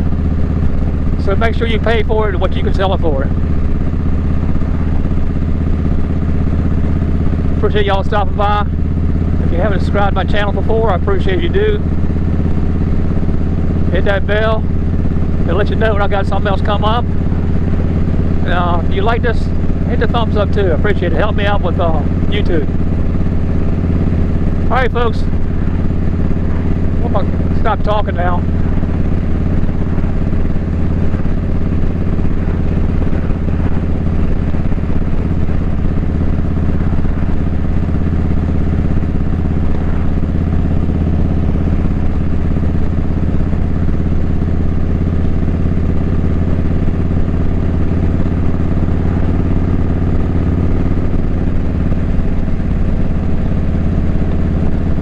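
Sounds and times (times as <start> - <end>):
motorcycle engine running steadily: 0.0 - 55.0.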